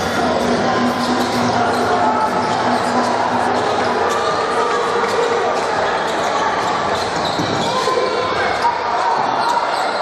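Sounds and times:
voices echoing in gym: 0.0s - 10.0s.

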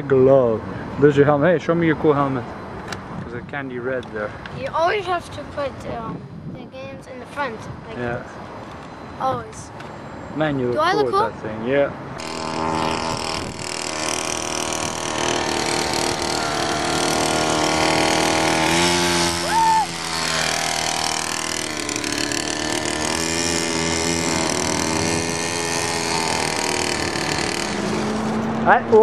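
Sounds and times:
minibike engine revving: 12.2s - 29.0s.

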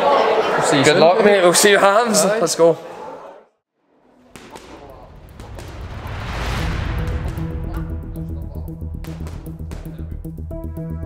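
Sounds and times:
music: 4.4s - 11.0s.

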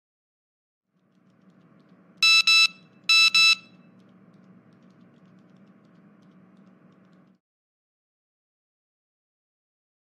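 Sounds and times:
faint steady hum: 1.0s - 7.4s
phone electronic beeps: 2.2s - 3.8s.

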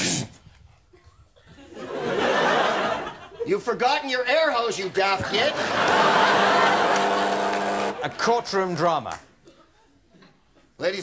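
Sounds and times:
audience laughter: 1.7s - 3.5s, 5.2s - 8.2s
low electric buzzer: 6.4s - 8.0s.

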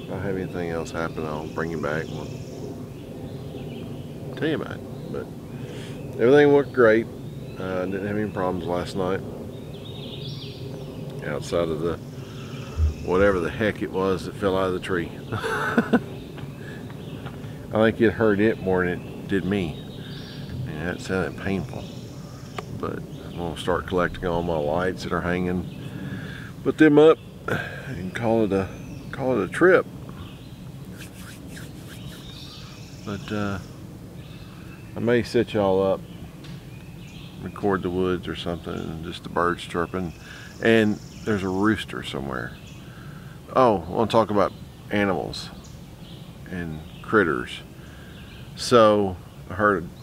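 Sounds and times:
bird warbling song: 0.0s - 50.0s
high thin bird trill: 30.9s - 33.3s.

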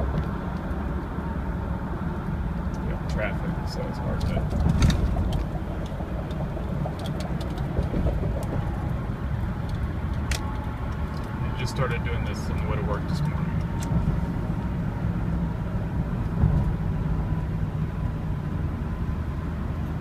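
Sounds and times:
car engine and road drone: 0.0s - 20.0s.

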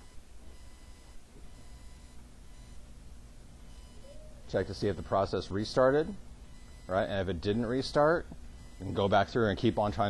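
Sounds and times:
soft steady hum: 0.0s - 10.0s.

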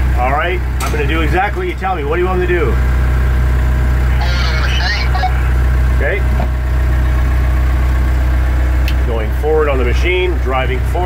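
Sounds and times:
forklift engine idling: 0.0s - 11.0s.

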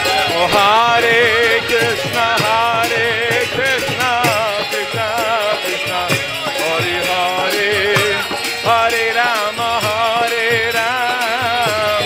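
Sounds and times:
hand cymbals: 0.0s - 12.0s
harmonium chords: 0.0s - 12.0s
ornamented singing voice: 0.0s - 12.0s.

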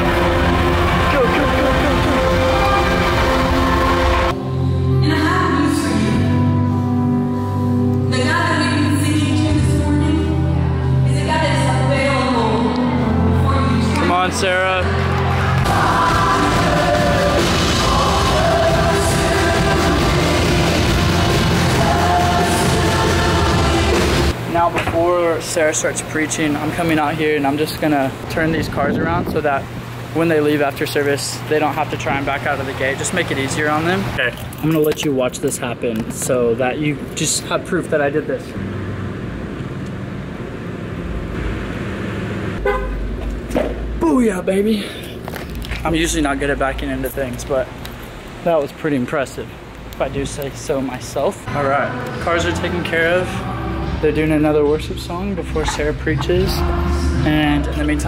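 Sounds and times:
person singing: 0.0s - 5.0s, 14.9s - 24.4s, 51.5s - 54.1s, 55.6s - 58.0s
worship band playing chords: 0.0s - 34.2s, 49.5s - 58.0s
car engine running: 38.2s - 48.4s
short car horn beep: 42.6s - 43.0s.

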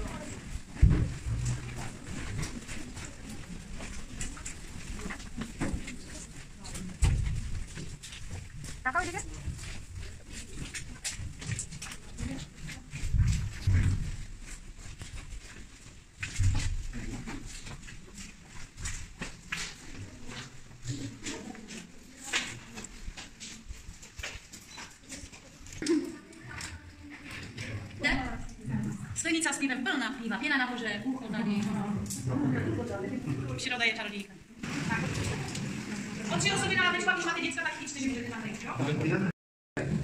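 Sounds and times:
footsteps in cave passage: 0.0s - 25.8s.

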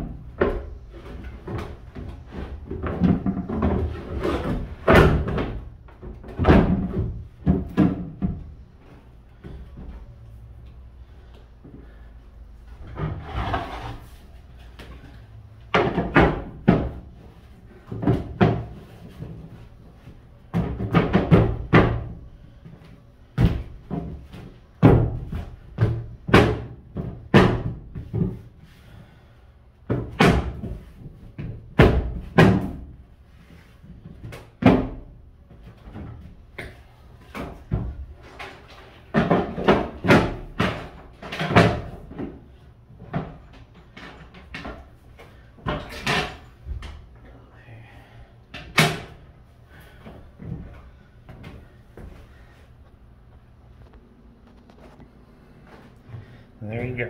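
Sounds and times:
floor panels thumping and knocking: 0.0s - 8.6s, 15.6s - 17.2s, 17.8s - 19.6s, 20.5s - 22.2s, 23.4s - 28.5s, 29.8s - 32.9s, 35.8s - 47.0s.

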